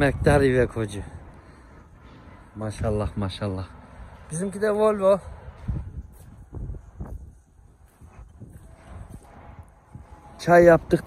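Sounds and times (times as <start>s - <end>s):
footsteps crunching on gravel: 5.4s - 10.3s.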